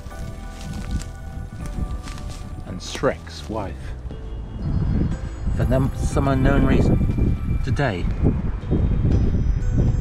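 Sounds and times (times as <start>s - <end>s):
wind buffeting microphone: 0.0s - 2.8s, 3.8s - 10.0s.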